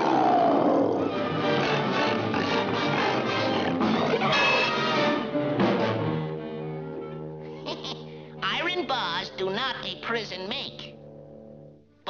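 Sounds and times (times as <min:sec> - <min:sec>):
cartoon lion roaring: 0:00.0 - 0:05.0
fast cartoon chase music: 0:01.1 - 0:06.3.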